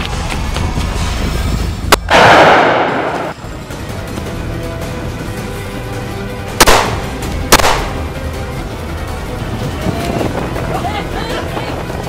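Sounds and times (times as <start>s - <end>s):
background music: 0.0s - 12.0s
gunshots: 1.9s - 3.4s, 6.6s - 8.0s.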